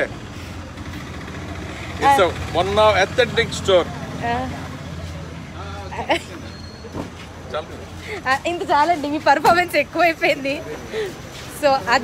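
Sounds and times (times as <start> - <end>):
street traffic rumble: 0.0 - 12.0
voices talking: 0.0 - 12.0.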